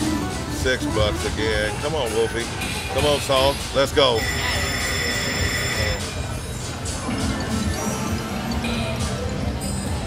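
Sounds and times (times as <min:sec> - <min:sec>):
slot machine ringing chime: 0:04.0 - 0:06.3.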